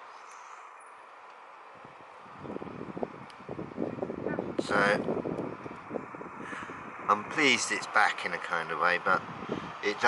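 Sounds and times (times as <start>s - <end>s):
road traffic hum: 0.0s - 10.0s
passing vehicle rumble: 0.4s - 10.0s.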